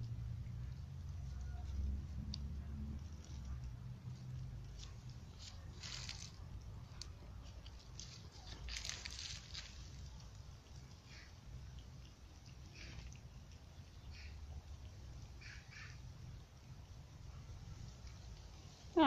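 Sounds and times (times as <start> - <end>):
dog chewing and crunching: 0.0 - 15.4.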